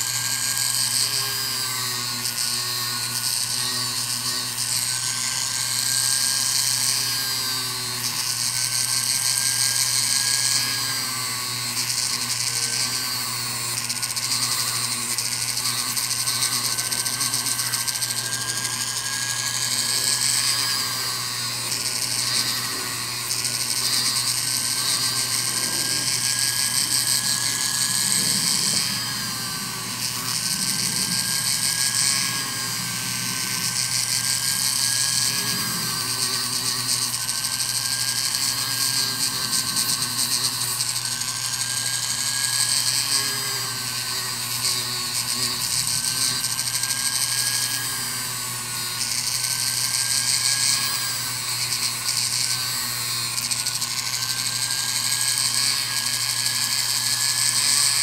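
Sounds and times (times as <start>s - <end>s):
rotary tool high whine: 0.0s - 58.0s.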